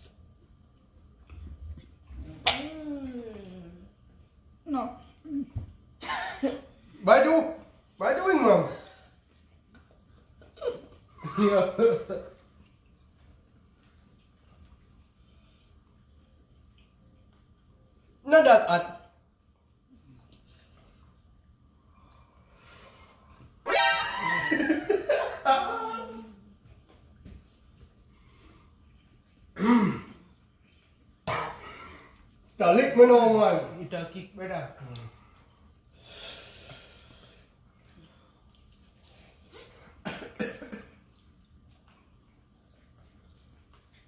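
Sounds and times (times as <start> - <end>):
short coughs: 31.2 - 31.7, 40.0 - 40.9.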